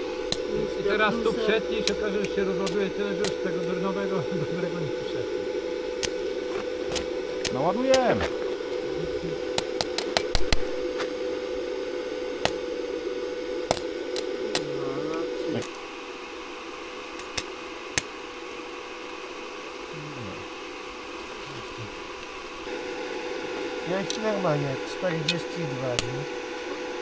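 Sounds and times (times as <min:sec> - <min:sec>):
welding arc crackling and popping: 0:00.0 - 0:05.2, 0:05.8 - 0:16.2, 0:16.8 - 0:27.0
welder humming: 0:00.0 - 0:27.0.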